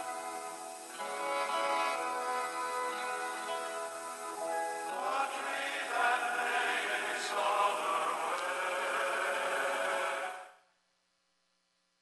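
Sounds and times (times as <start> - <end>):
slow chanting voices: 0.0 - 10.6.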